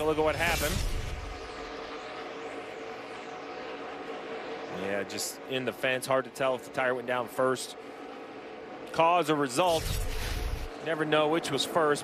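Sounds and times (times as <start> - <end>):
race car engines at speed: 0.0 - 12.0.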